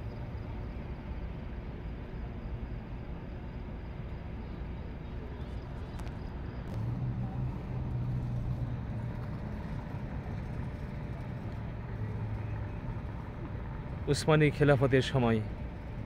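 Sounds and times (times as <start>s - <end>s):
motor vehicle humming: 5.1s - 16.0s.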